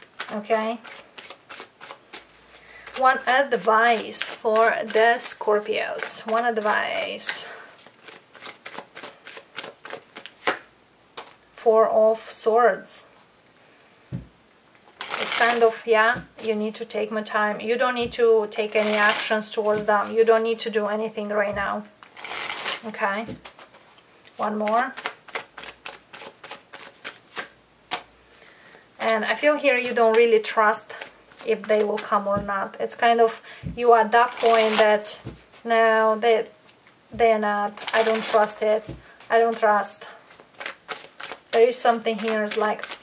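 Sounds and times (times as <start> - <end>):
cards being shuffled: 0.0 - 11.4, 14.9 - 16.6, 18.0 - 20.2, 21.5 - 28.1, 29.1 - 32.7, 34.2 - 35.7, 36.7 - 43.0.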